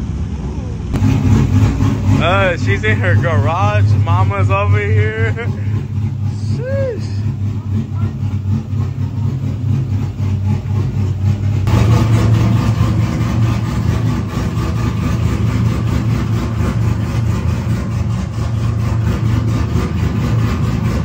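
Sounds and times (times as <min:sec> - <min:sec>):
car engine idling: 0:00.0 - 0:21.0.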